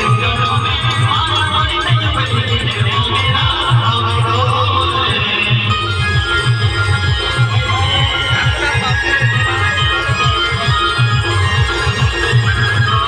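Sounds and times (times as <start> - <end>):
band music over loudspeakers: 0.0 - 13.0.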